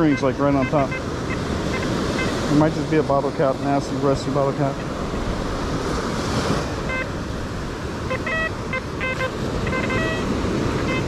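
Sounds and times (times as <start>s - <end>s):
metal detector beeps: 0.0s - 2.6s, 6.9s - 7.1s, 8.1s - 11.0s
surf: 0.0s - 11.0s
wind: 0.0s - 11.0s.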